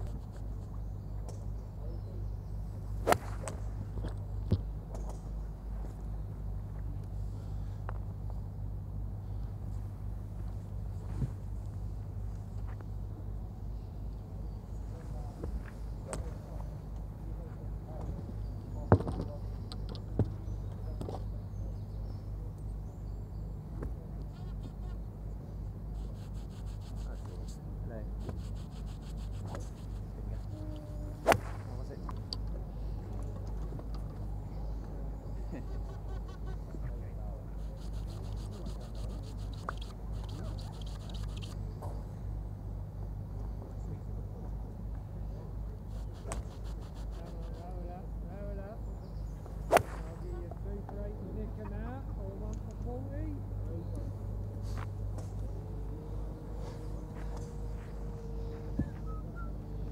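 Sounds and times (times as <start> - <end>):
steady low hum: 0.0 - 59.9
golf club striking ball: 3.0 - 3.7, 31.2 - 31.7, 49.6 - 50.4.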